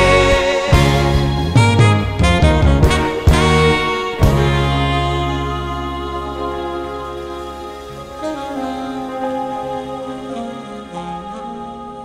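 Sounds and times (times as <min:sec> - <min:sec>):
live rock band: 0:00.0 - 0:09.6
deep bass note: 0:00.0 - 0:10.5.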